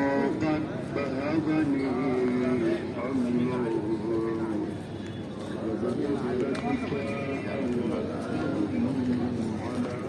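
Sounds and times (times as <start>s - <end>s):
man chanting prayer: 0.0s - 4.8s, 5.5s - 10.0s.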